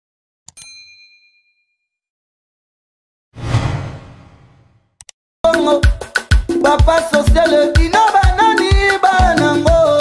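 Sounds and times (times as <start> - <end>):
notification bell ding: 0.5 - 1.8.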